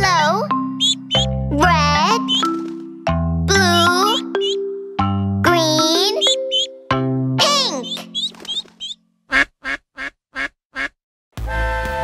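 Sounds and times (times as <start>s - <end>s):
upbeat music: 0.1s - 8.6s
held musical note: 0.7s - 8.4s
cartoon duck quacking: 0.8s - 1.3s, 3.5s - 4.6s, 7.4s - 11.0s.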